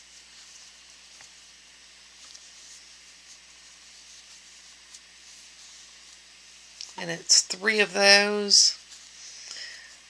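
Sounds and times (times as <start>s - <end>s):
steady background hiss: 0.0s - 10.0s
yarn rustling with crochet hook: 0.0s - 10.0s.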